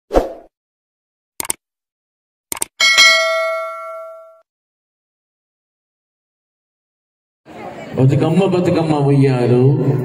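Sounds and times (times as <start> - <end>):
quick double clicks: 1.4 - 1.6, 2.5 - 2.7
bright bell ding: 2.8 - 4.4.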